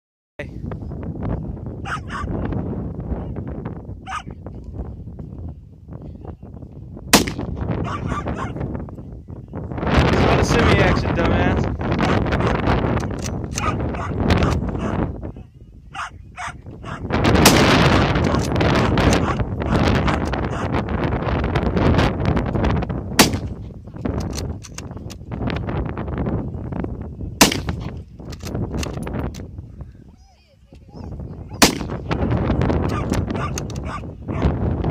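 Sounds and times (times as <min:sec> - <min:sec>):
rifle shots: 0:07.1 - 0:07.5, 0:17.4 - 0:18.5, 0:23.2 - 0:23.6, 0:27.4 - 0:27.9, 0:31.6 - 0:32.0.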